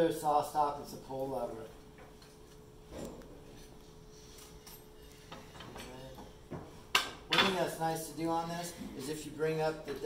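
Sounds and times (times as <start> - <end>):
faint steady hum: 0.0 - 10.0.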